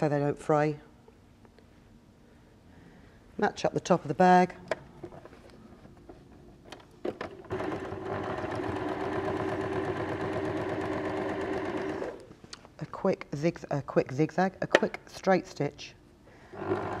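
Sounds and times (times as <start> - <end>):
sewing machine stitching: 7.2 - 12.2, 16.6 - 17.0.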